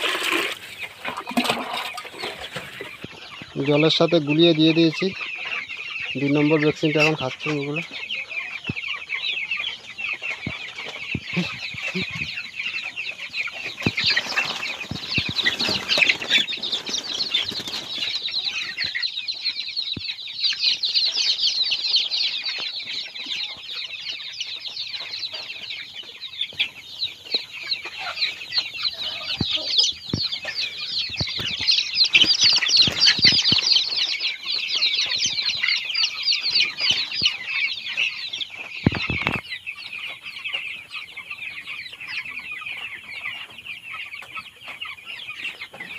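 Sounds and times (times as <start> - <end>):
chickens peeping: 0.0 - 45.9.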